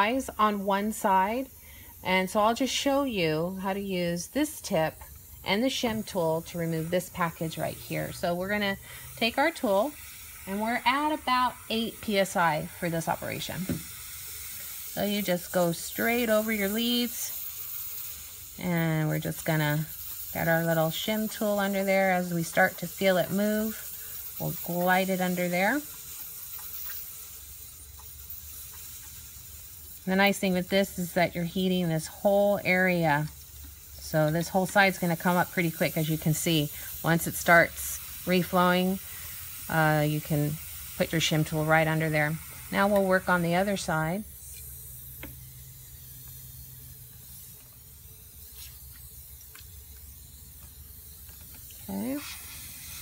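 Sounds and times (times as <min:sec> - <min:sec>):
hot air blowing hiss: 0:00.0 - 0:53.0.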